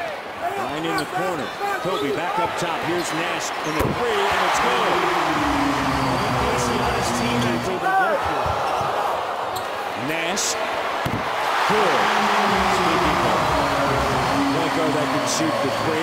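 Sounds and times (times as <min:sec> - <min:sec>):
crowd murmur: 0:05.0 - 0:07.7, 0:12.0 - 0:16.0.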